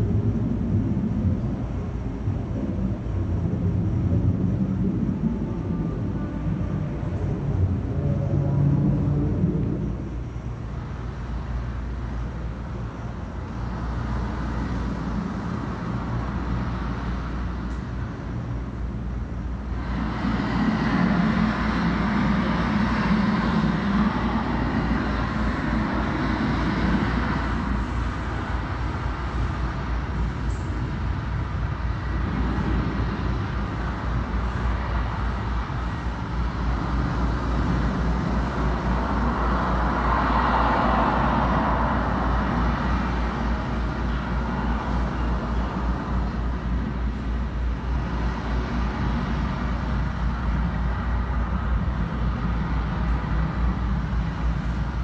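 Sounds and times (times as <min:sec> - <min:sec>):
low hum: 0:00.0 - 0:55.0.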